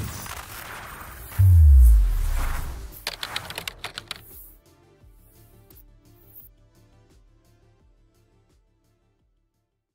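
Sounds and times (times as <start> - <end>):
typing-like clicks: 3.0 - 4.4.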